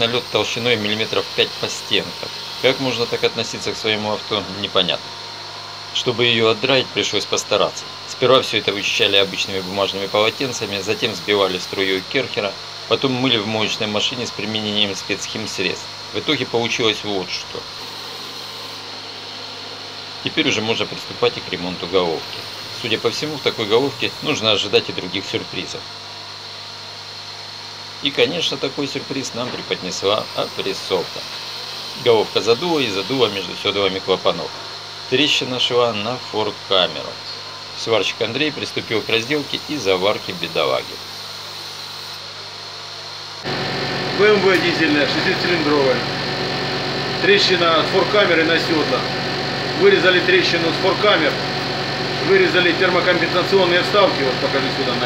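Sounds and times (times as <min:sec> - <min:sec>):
steady hum and hiss: 0:00.0 - 0:43.5.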